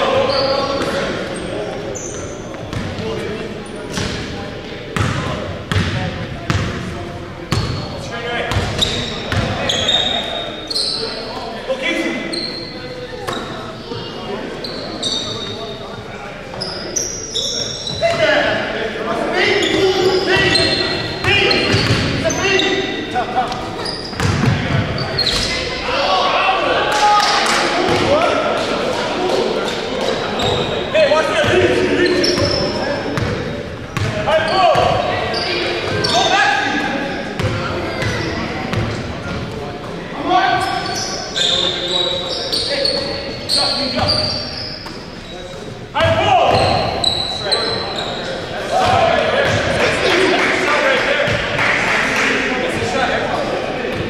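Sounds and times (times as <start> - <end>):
sneaker squeaks: 0.0 - 4.4, 7.5 - 18.5, 19.4 - 25.8, 29.6 - 49.8
players shouting: 24.8 - 33.3.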